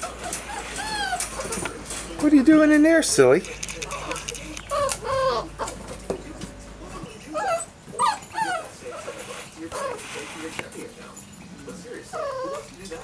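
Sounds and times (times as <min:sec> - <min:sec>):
puppies whining and yelping: 0:00.0 - 0:01.7, 0:03.9 - 0:06.0, 0:07.3 - 0:09.2, 0:12.0 - 0:12.8.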